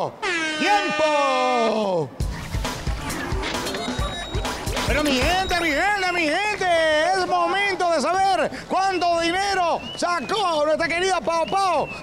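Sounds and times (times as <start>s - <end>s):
quick drum beat: 2.3s - 5.9s
upbeat jingle: 2.8s - 6.5s.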